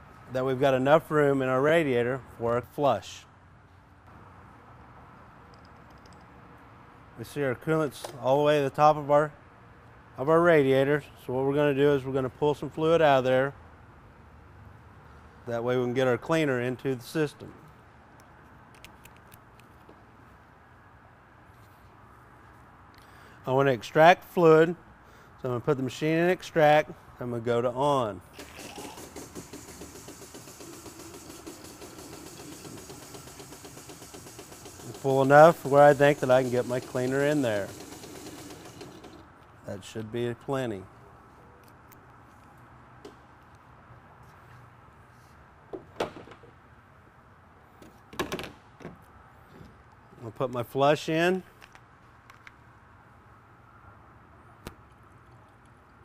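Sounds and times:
shop background hum: 0.0 - 56.0.

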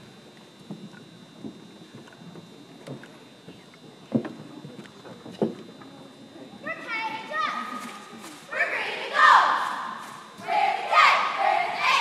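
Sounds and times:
girls shouting: 8.5 - 12.0.

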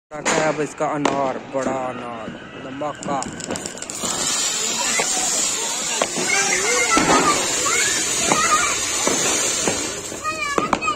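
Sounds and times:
firework fountain hissing: 2.9 - 10.9.

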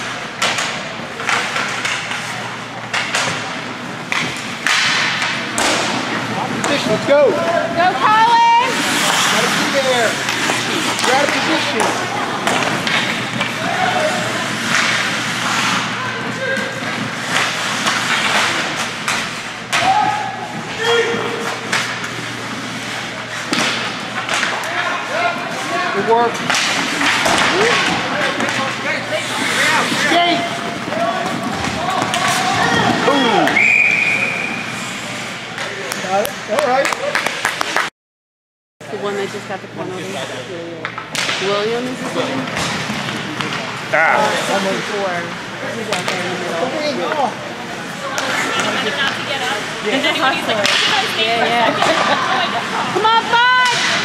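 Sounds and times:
sticks and puck clacking: 0.3 - 7.6, 8.3 - 25.7, 26.3 - 33.6, 47.9 - 49.3, 50.4 - 52.3
short steady whistle: 33.6 - 34.6.

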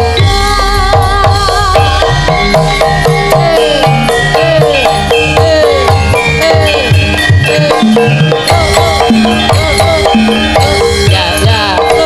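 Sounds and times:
drum beat: 0.0 - 12.0
metallophone notes: 0.0 - 12.0
wavering melody line: 0.0 - 12.0.

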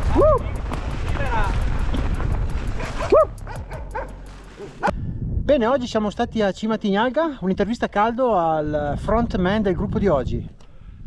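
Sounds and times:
bike freewheel hub ticking: 0.0 - 4.3
wind and tyres rumble: 0.0 - 6.4, 7.4 - 11.0
dog barking: 2.8 - 4.9.

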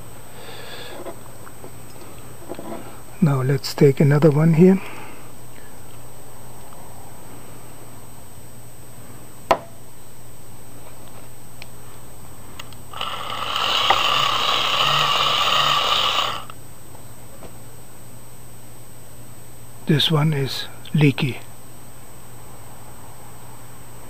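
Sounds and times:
hand-cranked dynamo whirring: 12.9 - 16.5.

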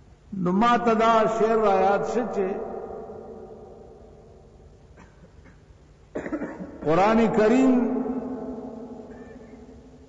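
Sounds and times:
man speaking: 0.4 - 2.9, 6.8 - 8.5
man coughing: 4.9 - 6.8, 9.1 - 9.6.

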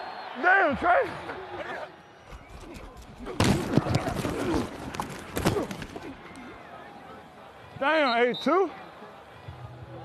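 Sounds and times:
faint indistinct voices: 5.4 - 10.0.

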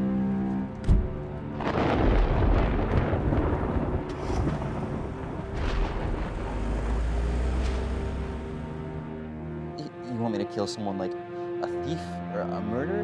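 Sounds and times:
film score held notes: 0.0 - 13.0
deep steady rumble: 0.8 - 9.8.

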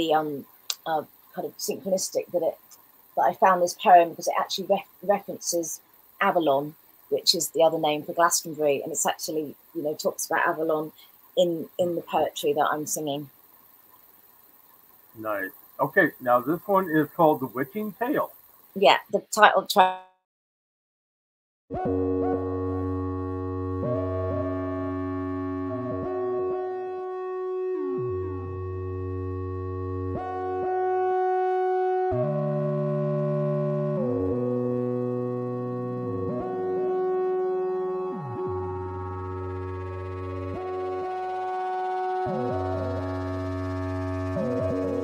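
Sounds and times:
analog synthesizer chords: 15.2 - 18.9, 21.8 - 45.0.

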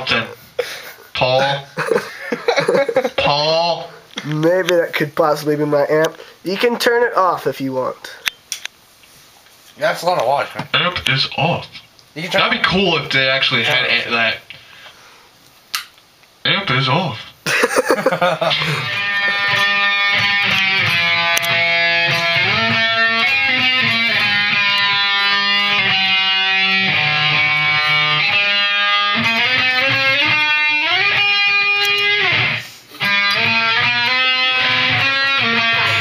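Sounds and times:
short laugh: 17.5 - 19.8
electric guitar lead with slides: 18.5 - 36.0.

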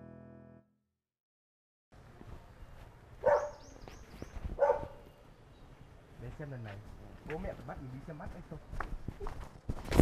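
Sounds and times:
dog barking: 3.2 - 3.7, 4.6 - 5.0.

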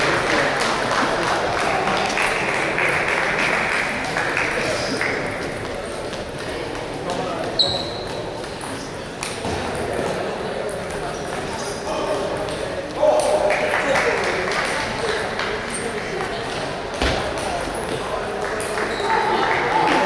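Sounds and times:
murmur of voices: 0.0 - 20.0.

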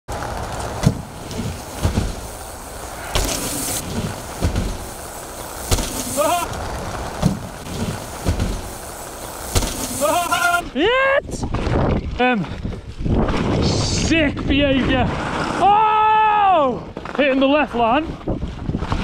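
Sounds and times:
tyres rolling and wind rush: 0.1 - 19.0
bike landing thuds on plywood: 0.4 - 2.4, 3.1 - 5.0, 5.6 - 6.4, 7.2 - 8.8, 9.5 - 10.0
person whooping: 6.1 - 6.5, 9.9 - 11.3.

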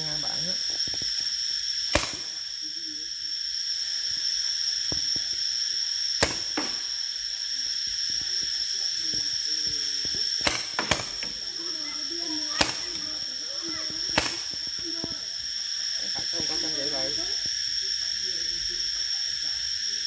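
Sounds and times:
paintball marker pops: 1.9 - 2.3, 6.2 - 6.9, 10.0 - 11.4, 12.6 - 13.1, 13.8 - 15.2.

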